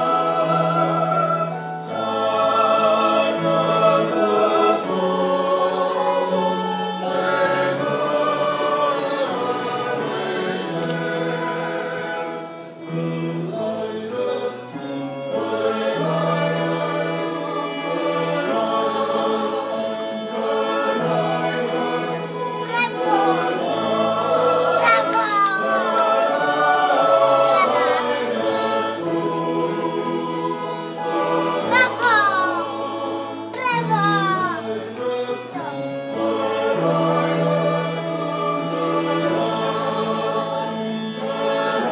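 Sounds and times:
choir singing a hymn: 0.0s - 41.9s
violins and flutes: 0.0s - 41.9s.

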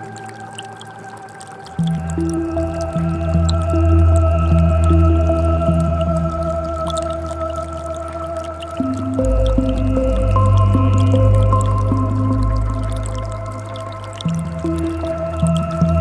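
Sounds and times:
ambient synth music: 0.0s - 16.0s
trickle of creek water: 0.0s - 16.0s.

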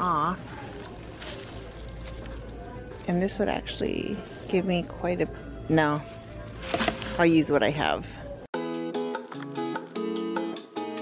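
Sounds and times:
plucked guitar music: 8.6s - 11.0s.

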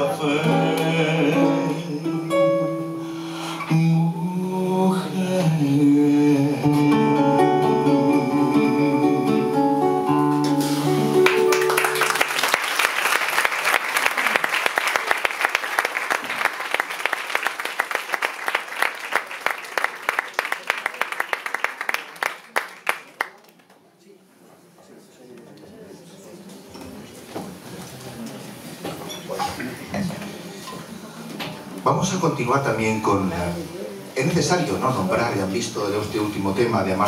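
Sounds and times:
classical guitars playing: 0.0s - 4.2s, 5.0s - 12.3s
audience applause: 11.0s - 23.6s.

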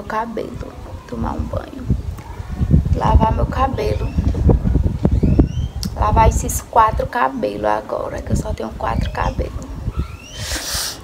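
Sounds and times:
wind buffeting microphone: 0.0s - 11.0s
faint high rising chirp: 5.1s - 5.8s, 9.0s - 10.6s.

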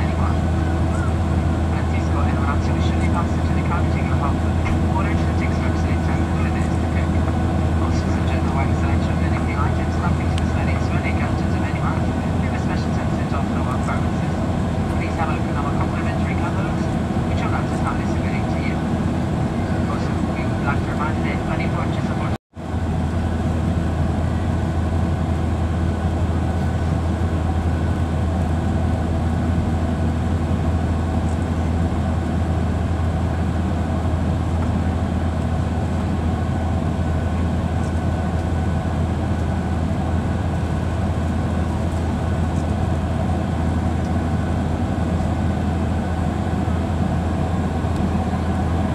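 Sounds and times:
jet engines droning: 0.0s - 48.9s.

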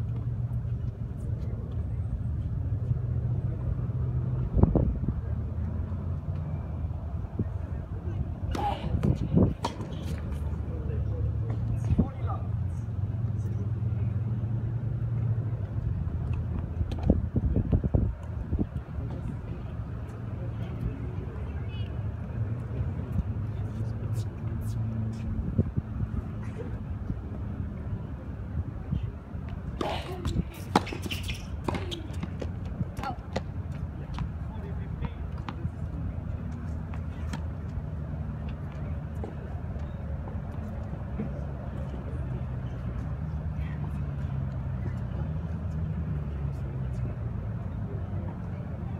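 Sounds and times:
tennis ball hit by racket: 8.4s - 10.5s, 29.7s - 33.5s.

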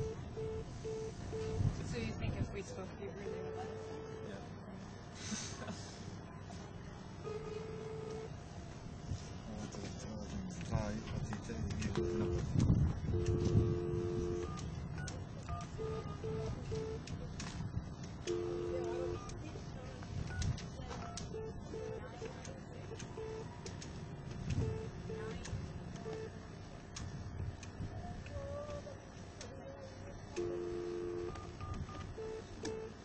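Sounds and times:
two-tone telephone tone: 0.0s - 1.7s, 3.2s - 4.4s, 7.2s - 8.3s, 11.9s - 17.0s, 18.2s - 19.4s, 21.0s - 22.2s, 24.6s - 25.4s, 30.3s - 33.0s
keypad key-press tones: 11.8s - 17.2s, 18.2s - 19.4s, 20.2s - 23.8s, 24.5s - 26.3s, 30.4s - 33.0s.

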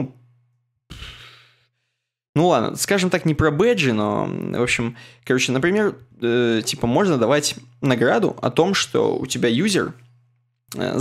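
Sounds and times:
person sighing: 0.9s - 1.6s.

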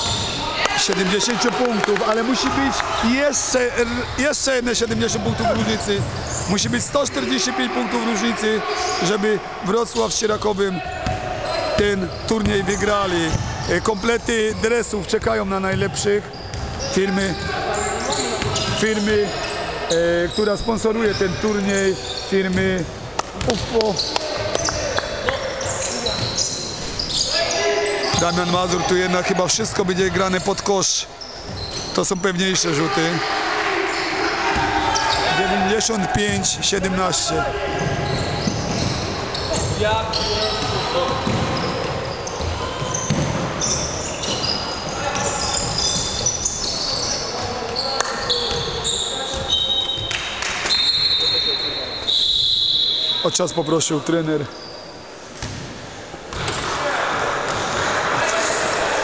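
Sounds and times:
sneaker squeaks on floor: 0.0s - 0.6s, 4.8s - 6.9s, 10.0s - 14.6s, 15.2s - 28.9s, 30.0s - 32.3s, 37.2s - 55.6s
echoing murmur of voices: 0.0s - 52.1s, 52.8s - 59.0s
people talking: 0.5s - 31.1s, 32.0s - 33.3s, 34.2s - 41.7s, 44.9s - 50.1s
basketball bouncing: 11.0s - 13.7s, 16.5s - 16.8s, 40.6s - 43.8s.

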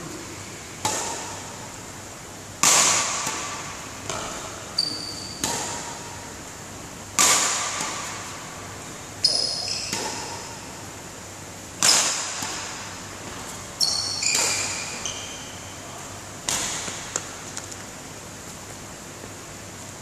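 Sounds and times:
racket hitting shuttlecock: 0.8s - 1.8s, 2.6s - 10.9s, 11.7s - 17.9s.

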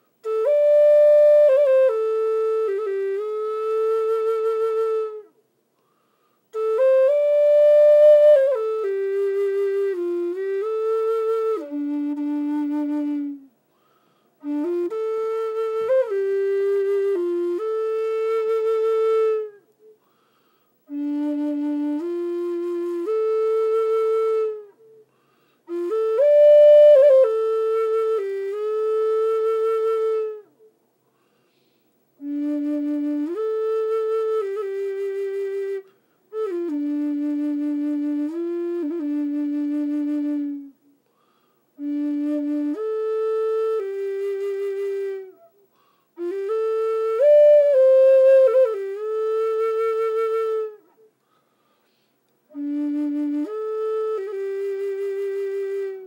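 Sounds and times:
solo flute melody: 0.0s - 30.8s, 31.5s - 56.0s.

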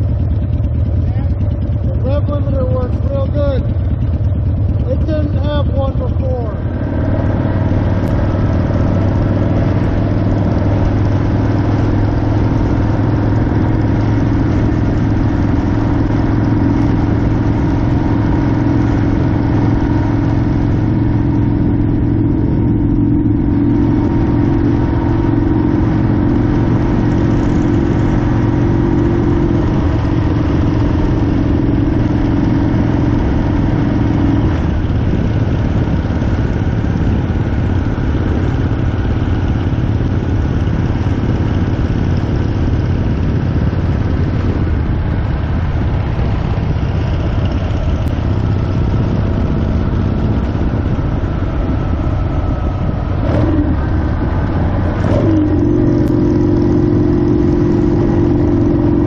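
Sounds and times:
motorcycle engine cruising: 0.0s - 59.0s
wind rush: 6.6s - 56.8s.

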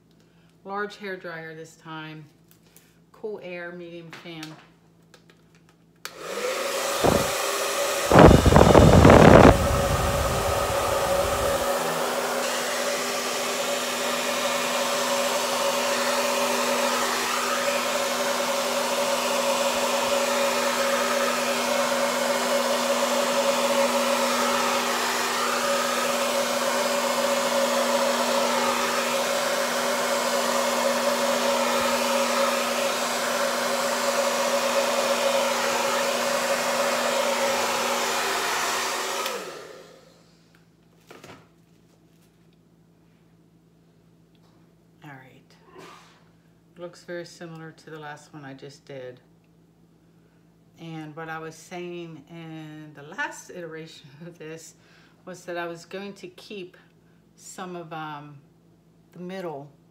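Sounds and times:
hair dryer running: 6.0s - 40.4s.

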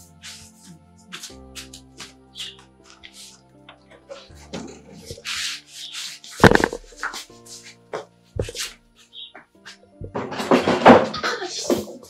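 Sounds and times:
background music sustained notes: 0.0s - 12.0s
scuffling and scraping: 0.2s - 12.0s.

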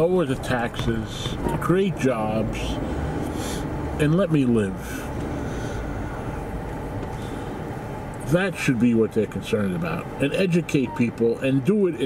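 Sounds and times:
car engine rumble inside cabin: 0.0s - 12.0s.

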